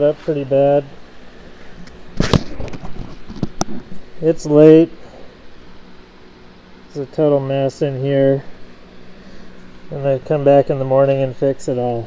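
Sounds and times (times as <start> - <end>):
low steady hum: 0.0 - 12.0
sharp clicks and knocks: 1.8 - 3.8.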